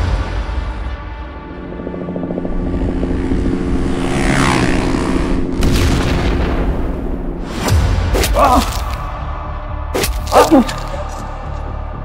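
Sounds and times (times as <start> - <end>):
low music drone: 0.0 - 12.0.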